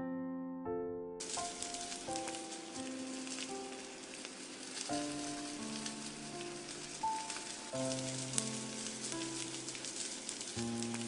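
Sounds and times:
hot oil sizzling with crackles: 1.2s - 11.0s.

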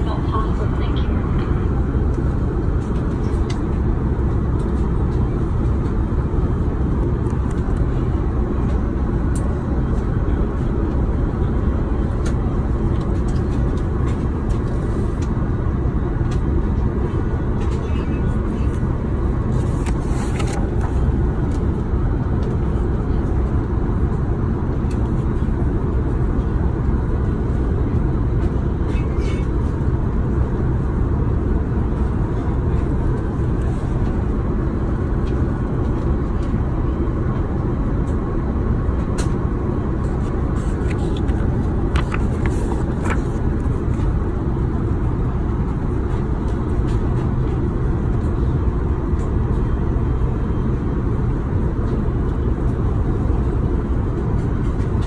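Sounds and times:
airplane cabin rumble: 0.0s - 55.0s
menu pages rustling: 40.6s - 43.4s.

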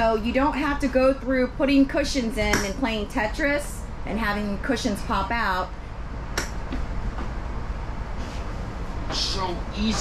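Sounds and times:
equipment humming: 0.0s - 10.0s.

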